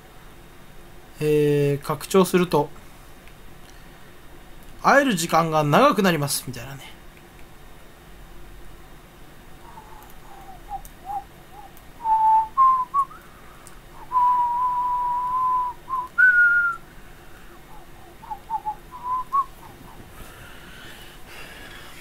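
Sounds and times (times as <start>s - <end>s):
person whistling a tune: 9.7s - 13.3s, 14.0s - 16.8s, 17.7s - 19.6s.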